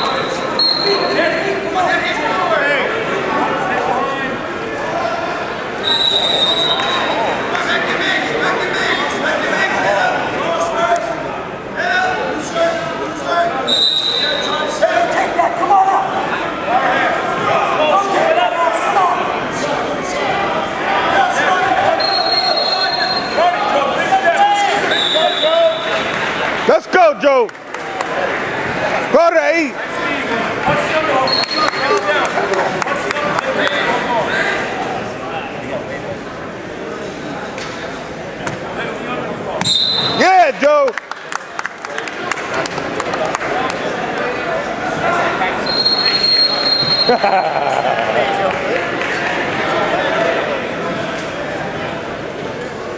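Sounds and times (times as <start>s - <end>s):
referee's whistle blast: 0.0s - 1.2s, 5.8s - 7.2s, 24.8s - 26.0s, 39.6s - 40.2s, 45.6s - 47.2s
crowd shouting and talking: 0.0s - 52.9s.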